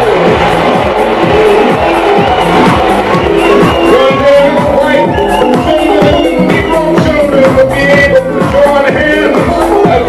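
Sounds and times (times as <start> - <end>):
electronic dance music: 0.0 - 10.0
steady kick drum: 0.0 - 10.0.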